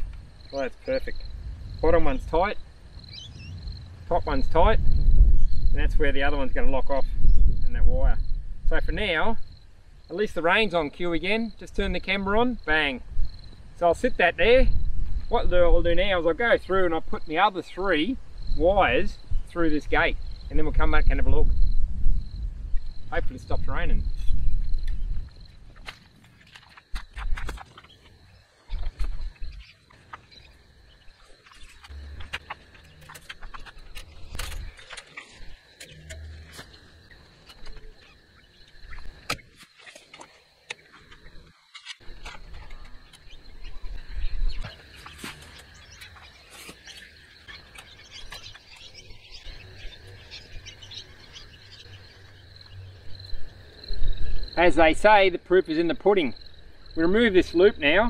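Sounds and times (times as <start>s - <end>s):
insects chirring: 0.0s - 58.0s
barbed wire clicking and rustling: 31.3s - 38.1s.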